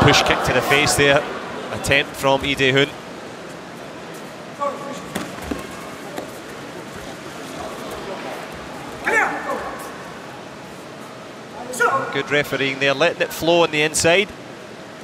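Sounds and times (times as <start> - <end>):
indoor crowd hubbub: 0.0 - 15.0.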